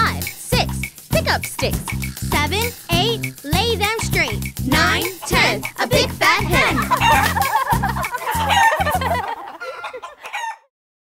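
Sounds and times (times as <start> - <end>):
children's song: 0.0 - 9.4
hen clucking: 4.2 - 10.7.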